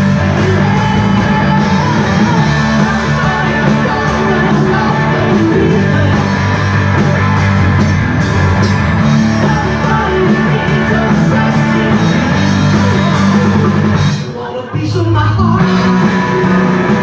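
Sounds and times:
person singing: 0.0s - 7.2s, 9.2s - 17.0s
drums: 0.0s - 17.0s
electric guitars: 0.0s - 17.0s.

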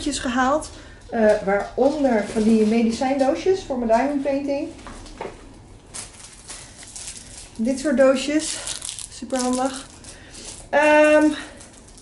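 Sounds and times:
plastic wrapping crinkling: 1.1s - 12.0s.

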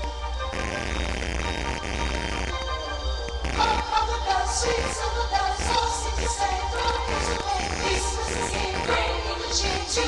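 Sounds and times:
faulty microphone pulsing buzz: 0.0s - 10.0s
music playing: 0.0s - 10.0s.

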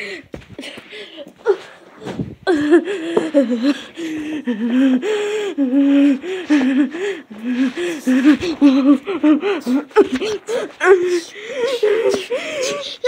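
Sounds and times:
child making wordless vocal sounds: 4.6s - 13.0s.

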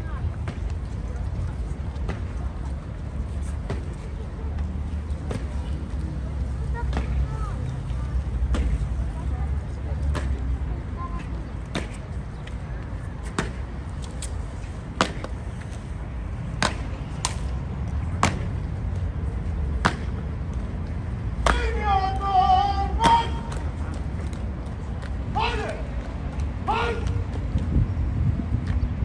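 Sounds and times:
crowd murmur: 0.0s - 29.0s
person calling out: 21.6s - 23.5s.

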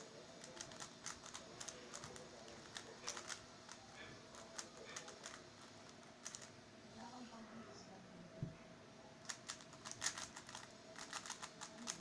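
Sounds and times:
puzzle cube clicking: 0.4s - 6.5s, 9.3s - 12.0s.

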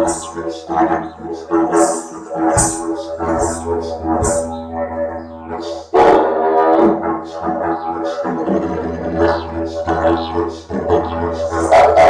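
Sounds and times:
didgeridoo drone: 0.0s - 12.0s.

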